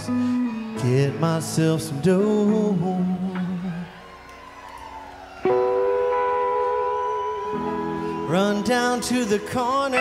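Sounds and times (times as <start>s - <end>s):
guitar chord ringing: 9.8s - 10.0s.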